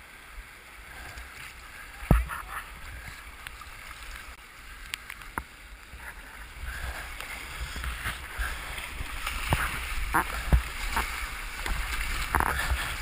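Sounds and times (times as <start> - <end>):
rushing whitewater: 0.0 - 13.0
water splashing: 0.0 - 13.0
kayak paddle strokes: 0.8 - 13.0.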